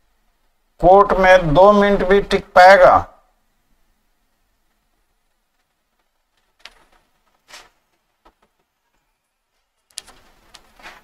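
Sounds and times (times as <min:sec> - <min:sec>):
person shifting in chair rustles: 0:05.7 - 0:08.7, 0:09.6 - 0:11.0.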